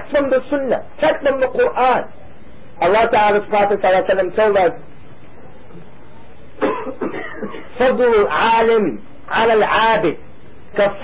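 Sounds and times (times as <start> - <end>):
recording hiss: 0.0 - 11.0
man coughing: 6.6 - 7.8.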